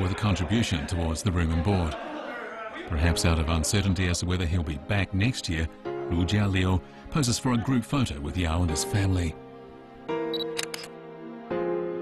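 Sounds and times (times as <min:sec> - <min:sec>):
background music chords: 0:02.9 - 0:12.0
camera shutter clicks: 0:10.4 - 0:10.9.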